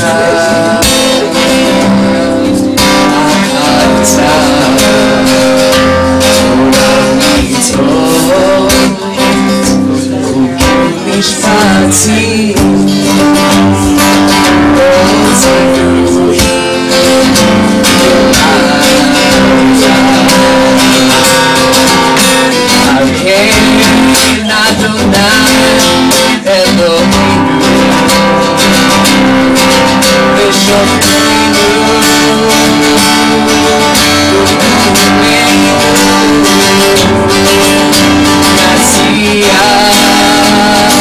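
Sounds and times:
acoustic guitar strumming: 0.0s - 41.0s
man singing: 0.0s - 41.0s.

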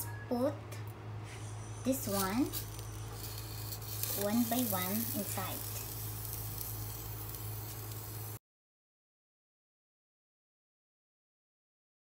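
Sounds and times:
steady low hum: 0.0s - 8.4s
meat sizzling faintly: 1.9s - 8.4s.

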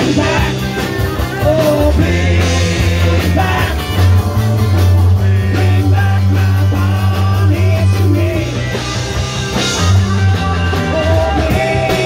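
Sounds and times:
person singing: 0.0s - 0.7s, 1.4s - 4.1s, 10.2s - 12.0s
live rock band playing: 0.0s - 12.0s
steady bass notes: 0.0s - 12.0s.

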